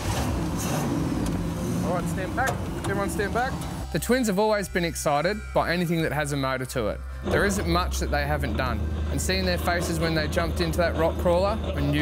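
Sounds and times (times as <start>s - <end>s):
engine running steadily: 0.0s - 12.0s.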